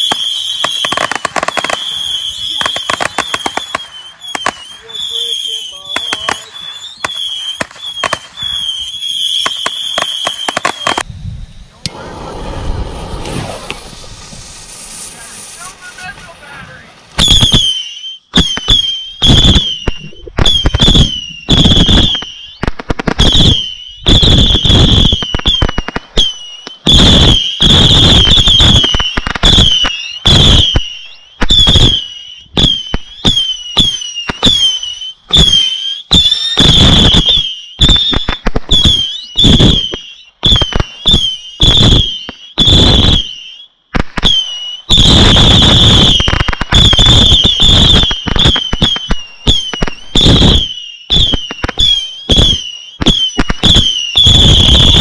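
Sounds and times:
whistling firework missiles: 0.0 - 55.0
firework launch pops: 2.6 - 4.6, 5.9 - 8.4, 11.8 - 43.3, 43.9 - 55.0.

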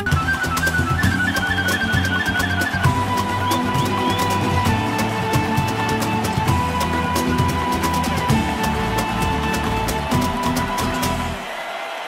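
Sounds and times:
flute melody: 0.0 - 11.5
strummed acoustic guitars: 0.0 - 11.5.

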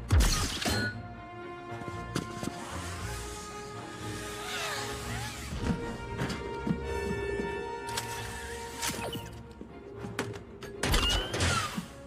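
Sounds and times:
orchestral music: 0.0 - 12.0.

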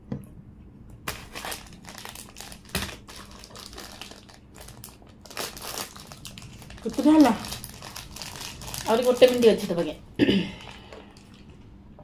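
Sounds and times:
plastic packaging crinkling: 1.0 - 10.0, 10.6 - 11.6
person speaking: 6.8 - 7.6, 8.8 - 10.1.

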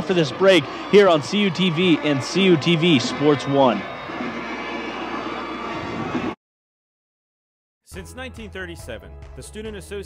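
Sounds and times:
stadium crowd din: 0.0 - 6.4.

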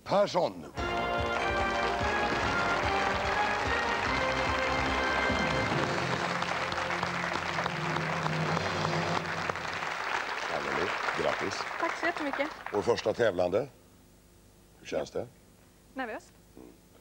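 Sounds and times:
game-show music chords: 0.8 - 9.7
audience applauding: 0.8 - 13.2.

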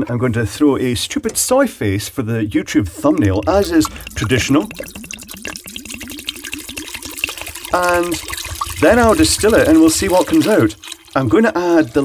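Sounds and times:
liquid glugging from glass bottle: 3.0 - 12.0.

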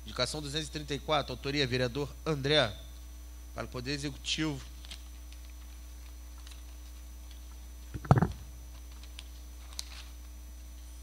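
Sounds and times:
low electrical hum: 0.0 - 11.0
microphone handling thump: 8.0 - 8.4.

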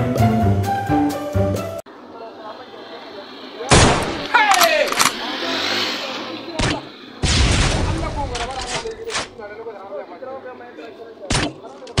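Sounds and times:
gunshot bangs: 3.7 - 4.2, 6.6 - 8.3.

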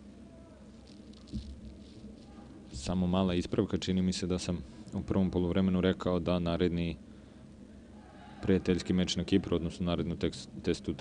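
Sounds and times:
football pitch ambience: 0.0 - 11.0
steady low hum: 0.0 - 11.0
soft dull thump: 1.3 - 1.7.

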